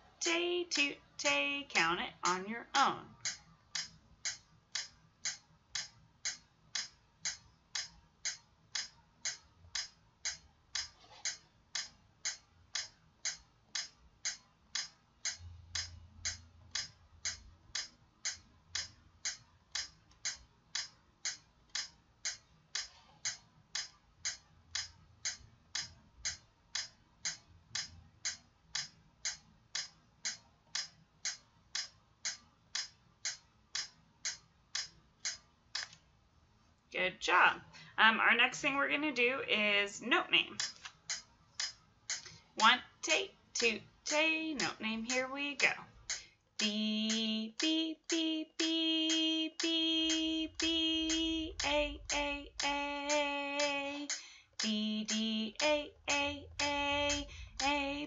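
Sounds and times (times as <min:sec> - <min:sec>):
metronome clicking: 0:00.2 - 0:36.0, 0:40.4 - 0:58.0.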